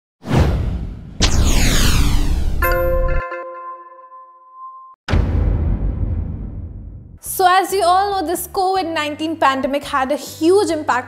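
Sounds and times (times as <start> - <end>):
whoosh sound effects: 0.3 - 3.2.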